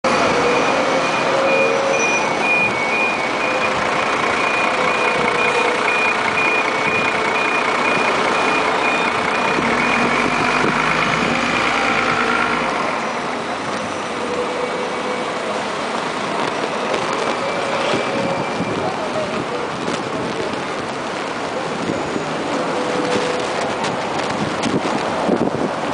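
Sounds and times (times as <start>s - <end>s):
busy street traffic: 0.0s - 25.9s
rapid electronic beeping: 0.5s - 10.8s.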